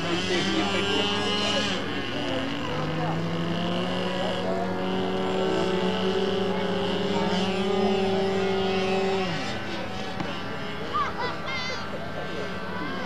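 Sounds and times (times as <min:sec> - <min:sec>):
small model engine running: 0:00.0 - 0:13.0.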